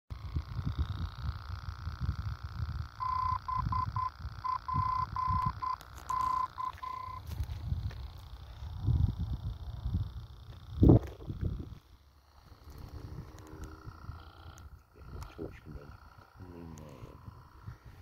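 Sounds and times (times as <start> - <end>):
faint steady hum: 0.1 - 18.0
morse code tone: 3.0 - 7.3.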